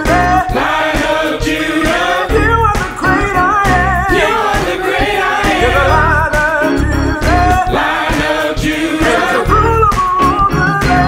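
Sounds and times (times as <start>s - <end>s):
piano drums and organ band: 0.0s - 11.0s
choir singing: 0.2s - 9.8s
man singing lead: 5.4s - 7.7s, 8.9s - 11.0s.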